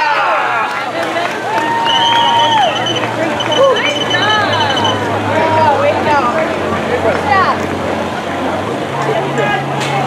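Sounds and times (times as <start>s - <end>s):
people talking over one another: 0.0s - 10.0s
high steady tone: 2.5s - 5.8s.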